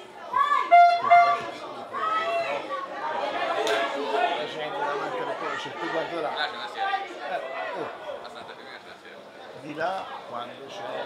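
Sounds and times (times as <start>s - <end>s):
chatter of spectators: 0.0s - 11.0s.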